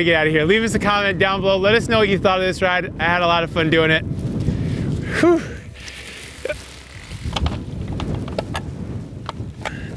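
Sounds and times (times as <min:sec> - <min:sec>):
wind rumbling on microphone: 0:00.0 - 0:09.9.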